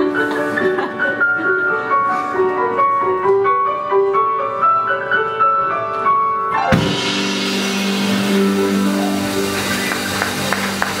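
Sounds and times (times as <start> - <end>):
sharp drum hits: 6.6 - 9.7
cymbals washing: 6.6 - 11.0
rock band holding final chord: 6.7 - 11.0.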